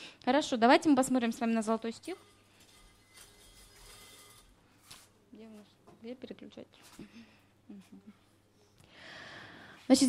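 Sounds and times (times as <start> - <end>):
woman speaking: 0.3 - 2.3, 5.3 - 6.9.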